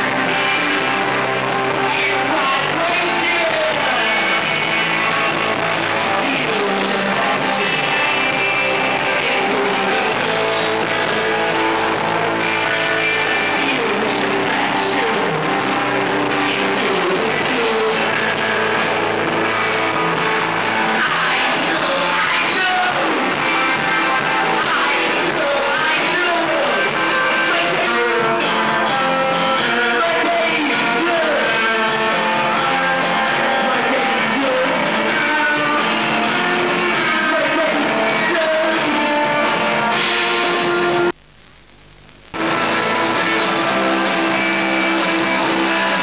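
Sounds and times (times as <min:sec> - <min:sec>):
live rock band: 0:00.0 - 0:41.2, 0:42.3 - 0:46.0
electric guitars: 0:00.0 - 0:46.0.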